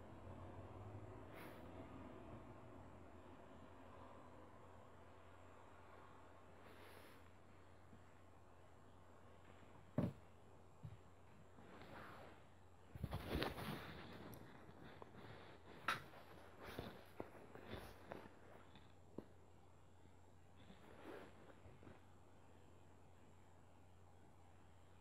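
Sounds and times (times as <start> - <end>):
steady low hum: 0.0 - 25.0
brief rustle: 13.0 - 18.3.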